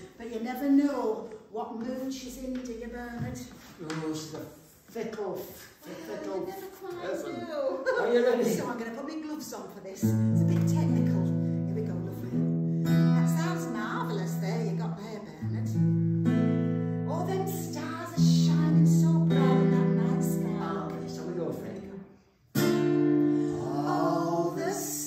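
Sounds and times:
acoustic guitar strumming chords: 15.4s - 24.8s.

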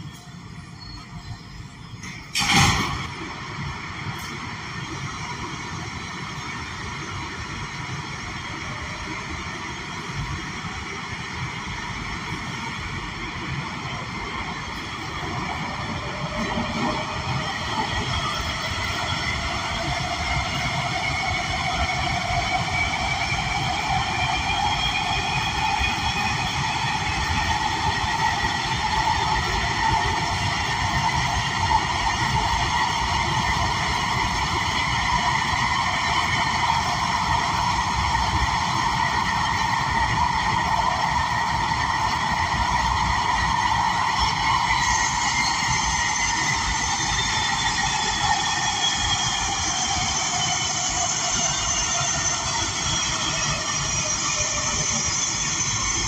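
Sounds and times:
subway car rumble and rail noise: 0.0s - 56.0s.

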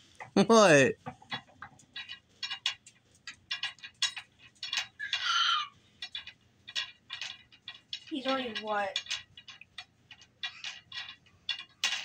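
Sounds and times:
wooden beads clacking: 0.0s - 12.0s
infant squealing: 5.1s - 5.8s.

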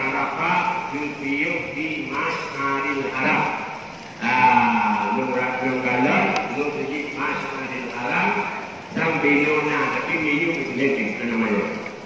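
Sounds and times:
man chanting prayer over loudspeaker: 0.0s - 12.0s.

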